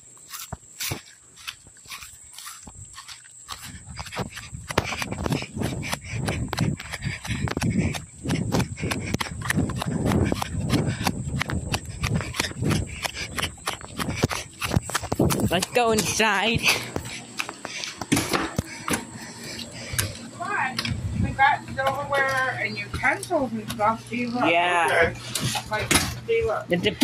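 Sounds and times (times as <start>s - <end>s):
footsteps on grass and gravel: 0.0s - 23.5s.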